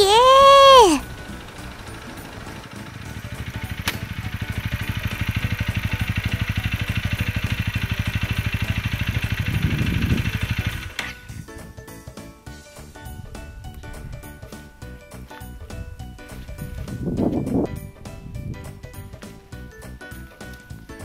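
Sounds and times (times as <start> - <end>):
motorcycle engine idling: 1.0 - 11.4.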